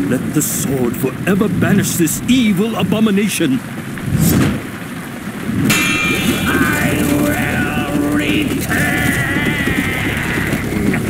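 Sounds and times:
heavy rain: 0.0s - 11.0s
thunder rumble: 0.0s - 11.0s
loud crash: 5.6s - 9.8s.

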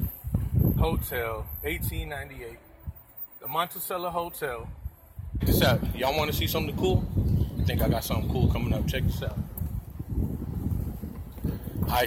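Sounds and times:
wind buffeting microphone: 0.0s - 3.1s, 4.5s - 12.0s
outdoor street noise: 0.0s - 12.0s.

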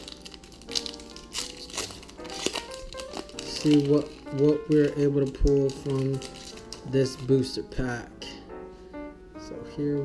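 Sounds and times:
foil wrapper crinkling: 0.0s - 7.7s
background music: 0.0s - 10.0s.

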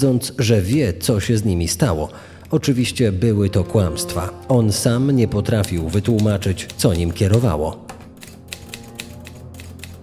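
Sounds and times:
held low music tones: 1.4s - 9.9s.

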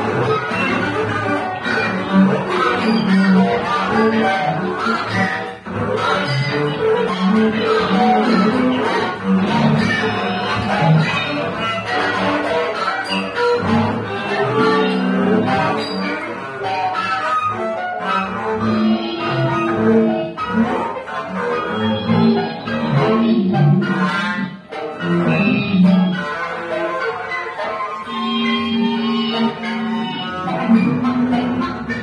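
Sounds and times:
bowed double bass: 0.0s - 32.0s
scratchy guitar: 0.0s - 32.0s.

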